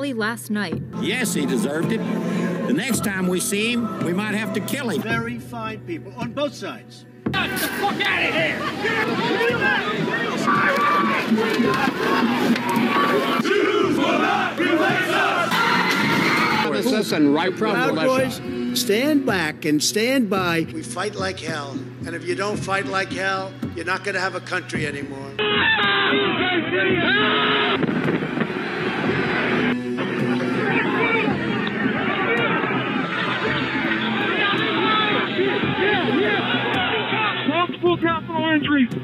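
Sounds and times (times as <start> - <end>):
background music: 0.0 - 39.0
crowd yelling and shouting: 0.9 - 5.2, 7.3 - 19.4, 25.4 - 39.0.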